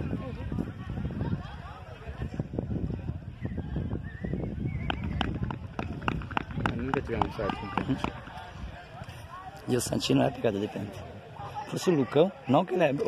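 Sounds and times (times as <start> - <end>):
wind rumbling on microphone: 0.0 - 12.4.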